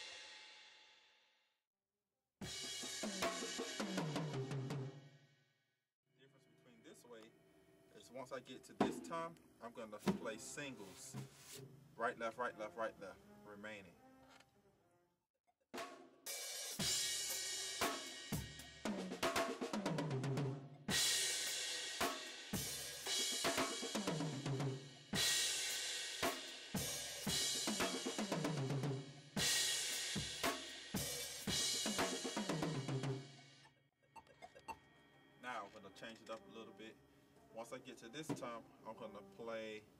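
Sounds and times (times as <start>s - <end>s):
drum kit exercise: 0.0s - 0.5s, 2.4s - 5.1s, 8.7s - 9.3s, 9.9s - 11.7s, 15.7s - 33.6s
cymbal crash: 0.0s - 0.8s.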